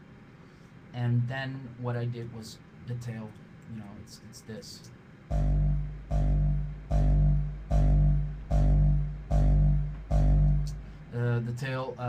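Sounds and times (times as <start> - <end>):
distorted kick drum hits: 5.3 - 11.1.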